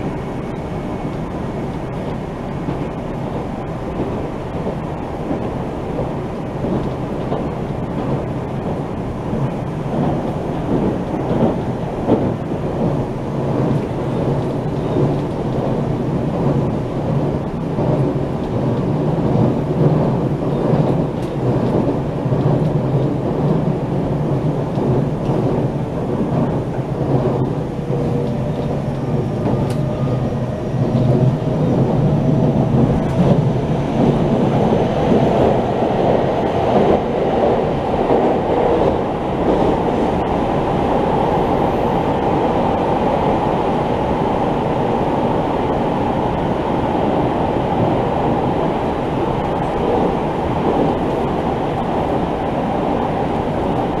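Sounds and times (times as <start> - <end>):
train wheels rumbling on rail: 0.0 - 54.0
faint clicks: 28.1 - 29.9.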